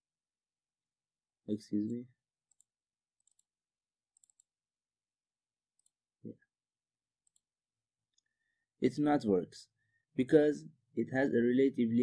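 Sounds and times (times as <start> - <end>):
faint computer mouse clicks: 2.5 - 3.5, 4.2 - 4.5.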